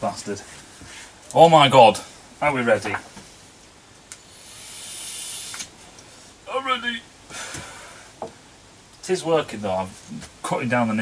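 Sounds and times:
air hissing through vape: 4.2 - 5.7
e-cigarette click: 5.4 - 5.7.

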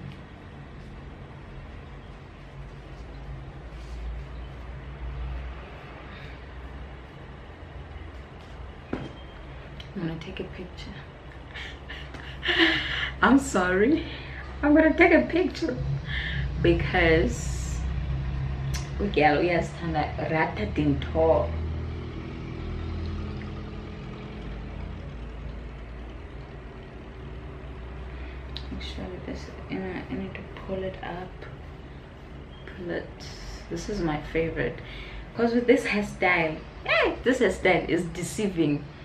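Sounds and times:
low background rumble: 0.0 - 39.0.

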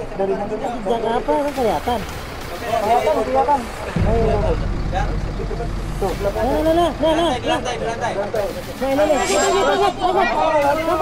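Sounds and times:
low rumble: 3.5 - 8.9.

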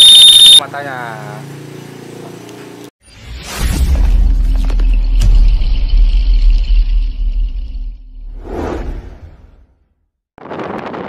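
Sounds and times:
short whoosh: 8.3 - 9.6.

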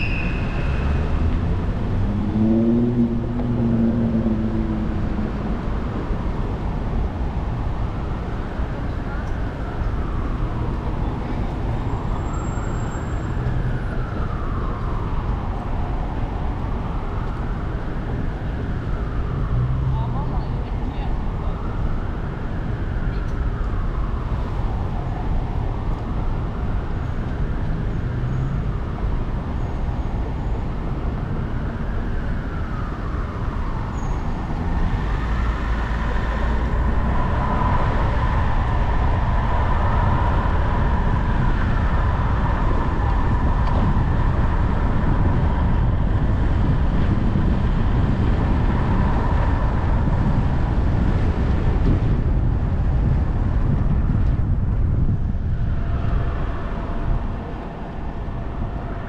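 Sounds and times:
steady high tone: 0.0 - 1.3
city traffic rumble: 0.0 - 59.0.

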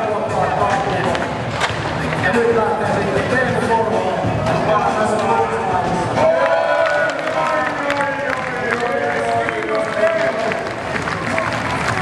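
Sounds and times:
skateboard clacks: 0.3 - 3.3.

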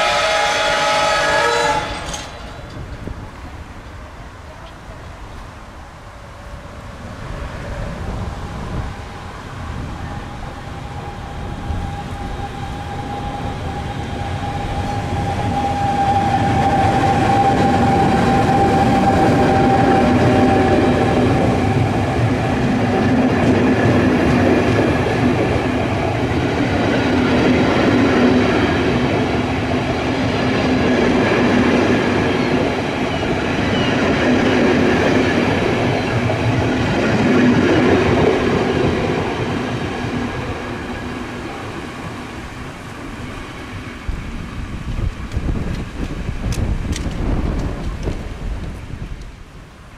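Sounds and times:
electric train passing: 0.0 - 49.9
high train whine: 0.0 - 49.9.

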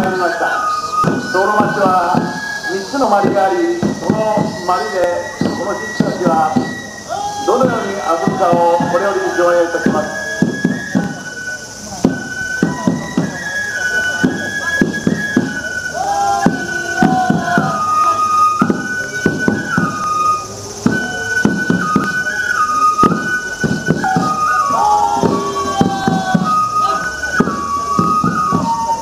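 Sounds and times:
flute melody: 0.0 - 29.0
drum strikes: 0.9 - 9.1, 9.8 - 11.3, 11.9 - 13.4, 14.1 - 20.1, 20.8 - 22.3, 22.9 - 29.0.

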